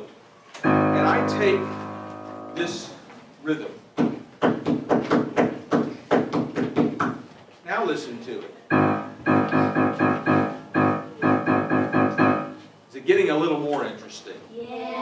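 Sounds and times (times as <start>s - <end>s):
piano note repeated rhythmically: 0.6s - 3.0s, 8.7s - 12.7s
sharp percussive taps: 8.7s - 12.5s.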